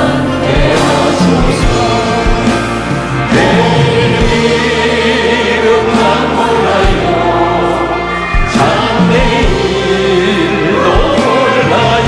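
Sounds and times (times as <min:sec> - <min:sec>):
group singing gospel in harmony: 0:00.0 - 0:12.0
instrumental backing: 0:00.0 - 0:12.0.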